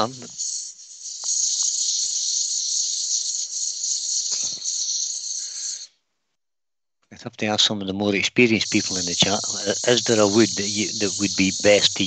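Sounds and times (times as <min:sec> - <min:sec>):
sandpaper hissing on wood on lathe: 0:00.0 - 0:05.9, 0:08.4 - 0:12.0.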